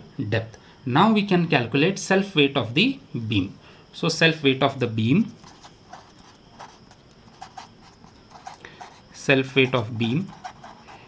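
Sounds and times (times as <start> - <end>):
marker scratching on paper: 5.4 - 11.0.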